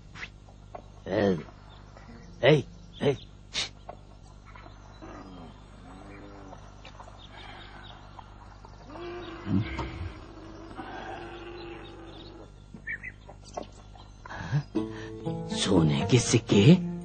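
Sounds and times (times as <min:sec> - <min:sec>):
animal calling: 0:04.4 - 0:13.7.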